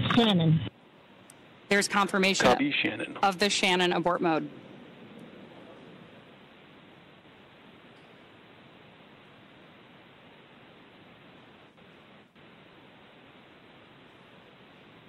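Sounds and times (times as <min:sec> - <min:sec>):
faint steady hiss: 0:00.0 - 0:15.0.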